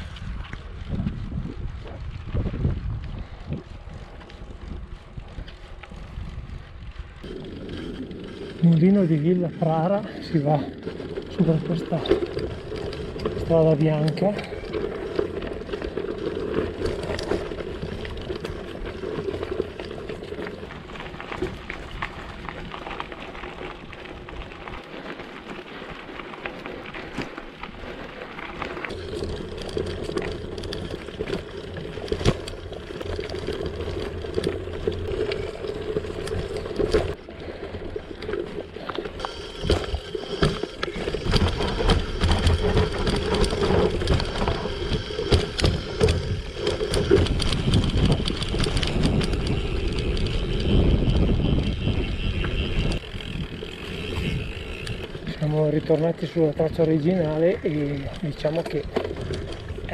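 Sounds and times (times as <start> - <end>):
wind on microphone: 0.0 - 8.5, 39.2 - 55.3
bike rattling and knocking: 0.0 - 59.9
bike tyres on gravel: 0.0 - 59.9.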